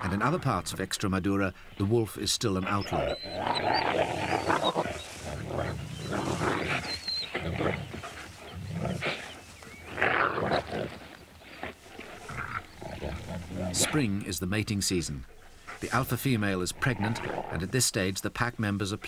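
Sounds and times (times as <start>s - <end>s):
wolves growling and snarling: 2.6s - 14.1s, 15.2s - 17.8s.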